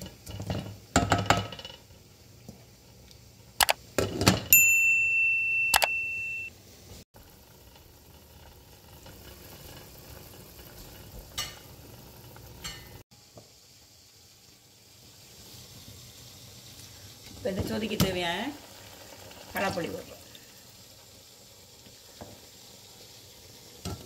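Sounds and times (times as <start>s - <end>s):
electronic beep: 5.6s - 6.5s
broth simmering: 7.2s - 24.0s.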